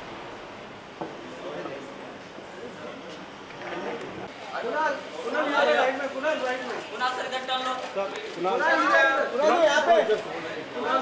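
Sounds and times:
crowd chatter: 1.1 - 11.0.

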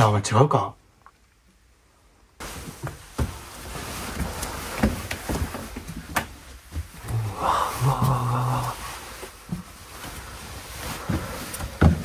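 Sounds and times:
steady rustling hiss: 0.0 - 12.0
heavy footsteps on wooden stairs: 2.5 - 12.0.

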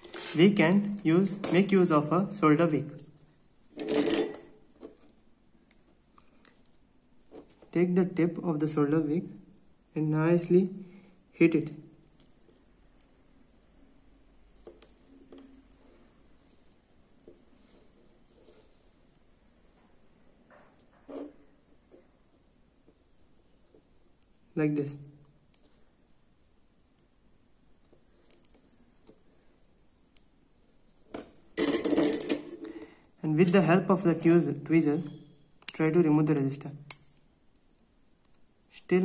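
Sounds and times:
metal tools clattering on workbench: 3.7 - 4.6, 31.6 - 32.7.

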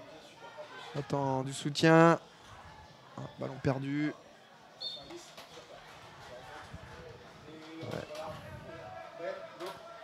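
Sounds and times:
stadium ambience: 0.0 - 10.0.

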